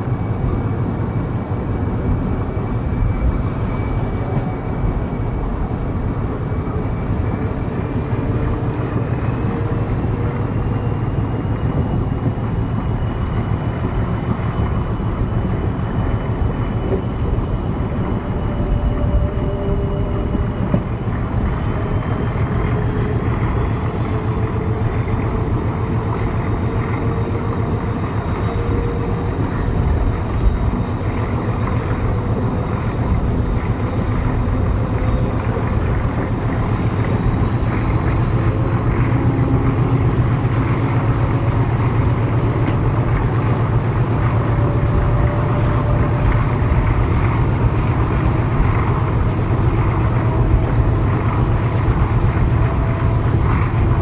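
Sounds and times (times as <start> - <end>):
diesel locomotive engine under load: 0.0 - 54.0
wind on microphone: 0.0 - 54.0.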